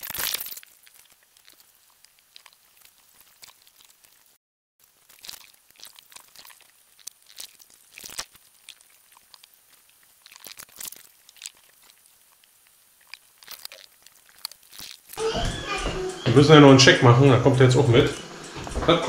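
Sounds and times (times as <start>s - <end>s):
pot boiling with small pops: 0.0s - 15.2s.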